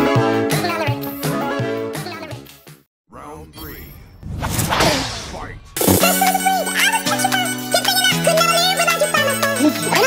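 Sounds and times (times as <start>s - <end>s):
announcer voice: 3.1s - 4.0s.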